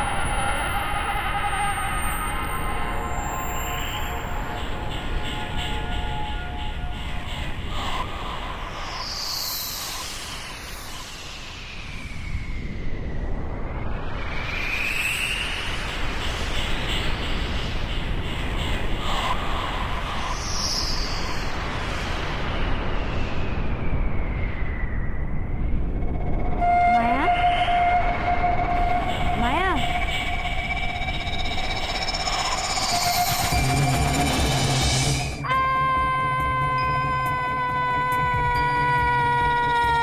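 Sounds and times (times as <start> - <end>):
gliding whistle-like tones: 0.0 - 35.7
low rumble: 21.5 - 39.1.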